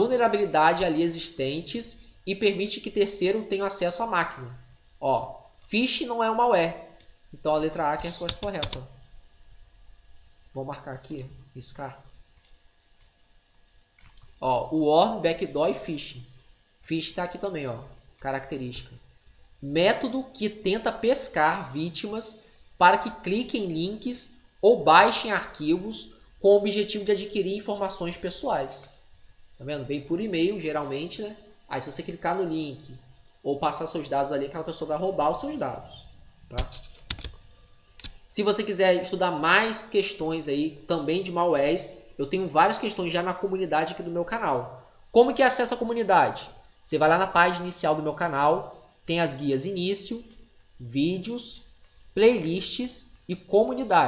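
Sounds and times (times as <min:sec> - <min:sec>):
person speaking: 0:00.0 - 0:09.1, 0:10.5 - 0:12.6, 0:14.0 - 0:37.4, 0:38.0 - 0:54.0
computer mouse clicks: 0:07.0 - 0:07.2, 0:08.0 - 0:08.9, 0:12.4 - 0:13.2, 0:14.0 - 0:14.4, 0:36.5 - 0:38.2, 0:50.3 - 0:50.8, 0:51.6 - 0:52.0
computer keyboard clicks: 0:08.1 - 0:08.9, 0:36.5 - 0:37.4.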